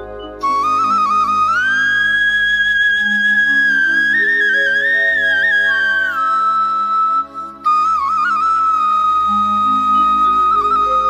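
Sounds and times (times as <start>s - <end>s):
sustained background chords: 0.0s - 2.4s
flute melody: 0.0s - 11.0s.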